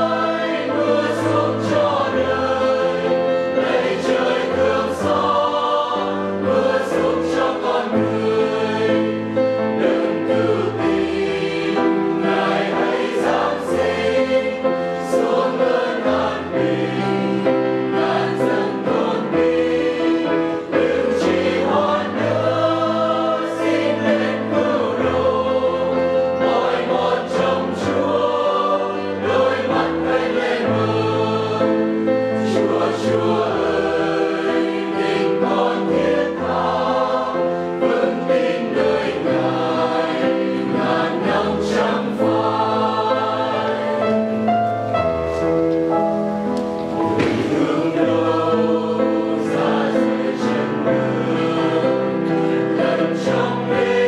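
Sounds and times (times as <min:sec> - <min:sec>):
mixed choir singing a hymn: 0:00.0 - 0:54.0.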